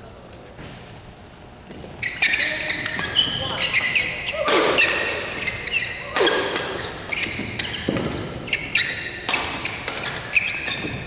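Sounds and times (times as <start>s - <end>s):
shoes squeaking on court: 1.7s - 11.0s
rackets striking shuttlecock: 4.3s - 11.0s.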